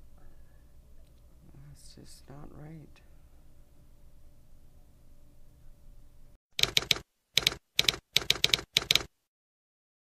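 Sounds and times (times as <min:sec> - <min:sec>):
typewriter keys clacking: 0:06.6 - 0:09.1.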